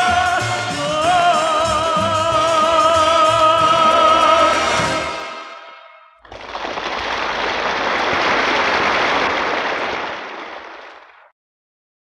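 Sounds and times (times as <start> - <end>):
audience applauding: 6.2 - 11.3.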